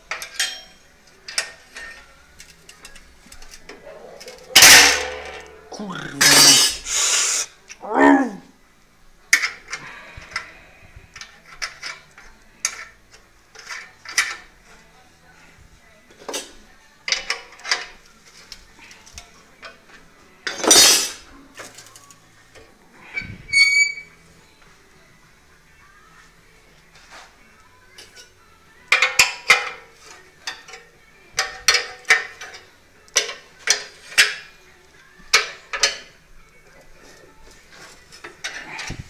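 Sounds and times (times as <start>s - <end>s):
metal parts clinking: 0.1s - 6.8s
short high squeak: 23.5s - 24.1s.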